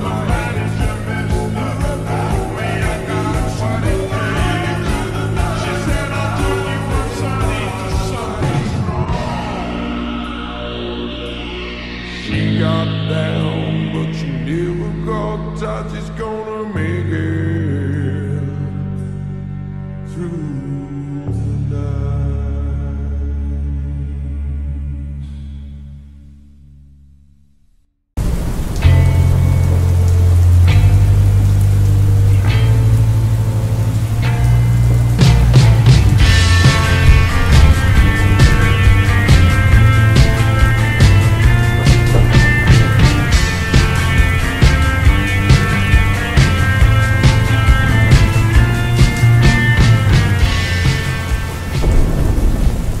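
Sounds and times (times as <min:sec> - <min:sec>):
steady rain: 0:00.0 - 0:08.6, 0:28.2 - 0:53.0
slowed reverb-heavy song: 0:00.0 - 0:27.2, 0:28.2 - 0:53.0
slow bass-heavy music: 0:00.0 - 0:27.6, 0:28.2 - 0:53.0
low rolling thunder: 0:28.2 - 0:53.0.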